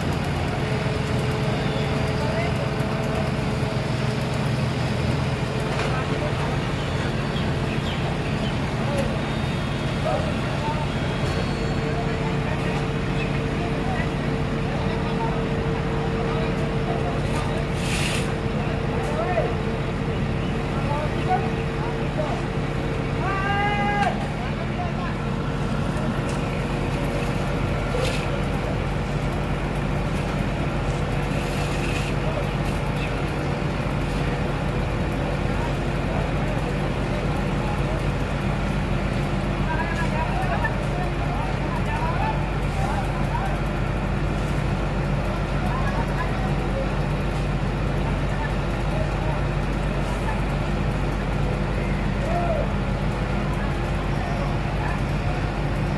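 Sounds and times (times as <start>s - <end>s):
diesel engine running: 0.0s - 55.9s.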